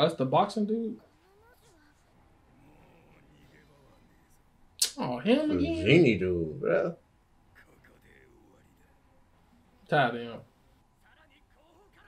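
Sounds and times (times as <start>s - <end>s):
faint animated dialogue: 0.0s - 12.0s.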